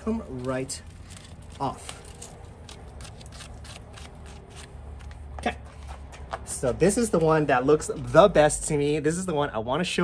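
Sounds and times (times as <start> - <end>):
gloves scratching fruit spines: 0.1 - 6.1.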